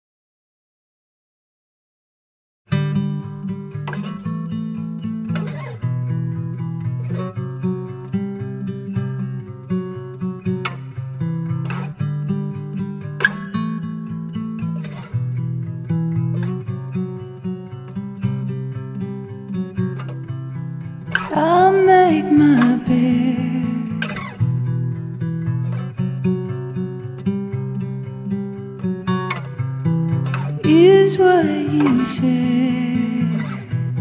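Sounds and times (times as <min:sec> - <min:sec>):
acoustic guitar strumming: 0:02.7 - 0:34.0.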